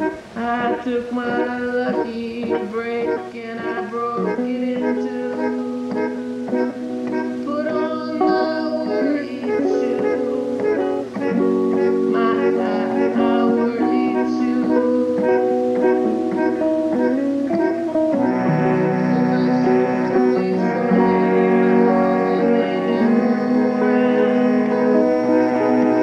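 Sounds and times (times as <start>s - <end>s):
acoustic guitar picking and strumming: 0.0s - 26.0s
fuller held chords: 0.0s - 26.0s.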